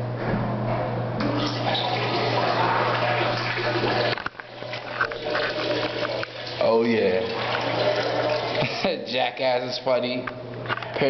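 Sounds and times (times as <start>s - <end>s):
water rushing in toilet: 1.2s - 9.0s.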